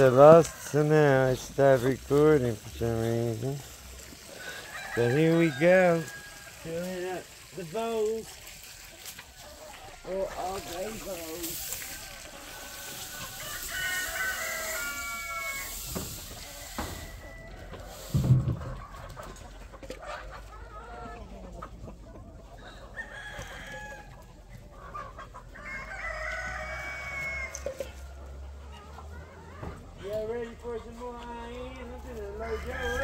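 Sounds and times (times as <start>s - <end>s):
chickens clucking: 0.0s - 33.0s
rooster crowing: 4.3s - 6.6s, 13.1s - 15.8s, 25.6s - 27.8s, 32.4s - 33.0s.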